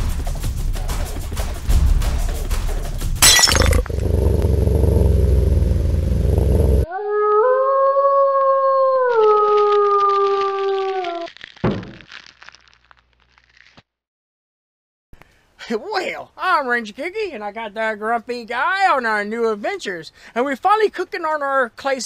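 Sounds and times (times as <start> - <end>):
sharp crash: 3.2 - 4.0
low rumble: 3.8 - 6.8
wolf howl: 6.8 - 11.3.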